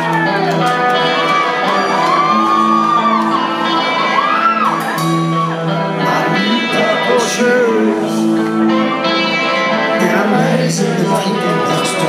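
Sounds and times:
audience shouting and whooping: 0.0s - 7.3s
live rock band playing: 0.0s - 12.0s.

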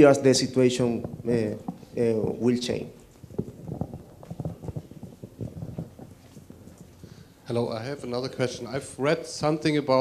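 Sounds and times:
microphone handling knocks: 0.8s - 2.5s, 3.2s - 7.4s.

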